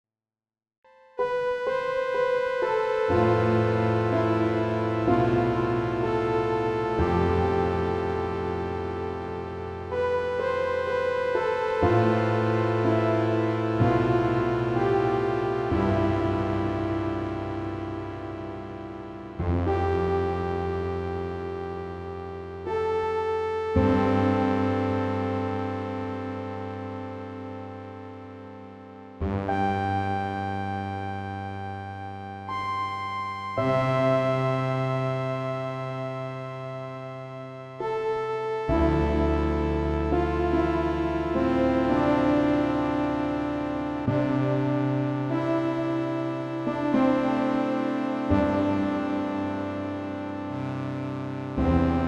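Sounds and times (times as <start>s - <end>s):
synthesizer music: 1.2s - 52.0s.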